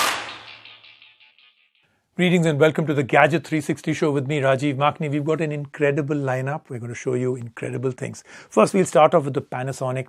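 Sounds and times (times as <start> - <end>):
ringing crash hit: 0.0 - 1.4.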